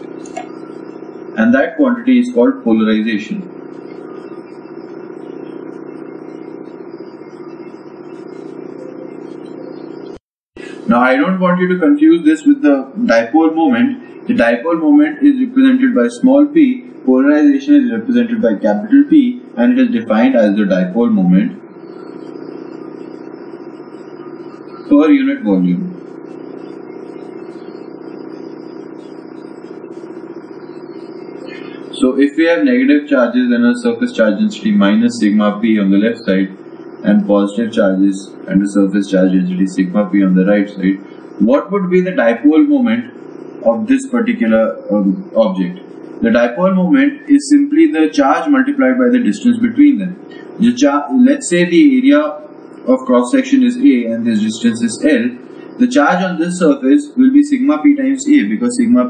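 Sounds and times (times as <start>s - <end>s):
background hum: 0.0s - 59.0s.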